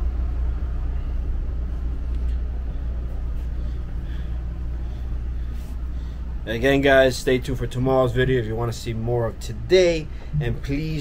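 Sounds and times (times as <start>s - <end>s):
boat engine rumble: 0.0s - 11.0s.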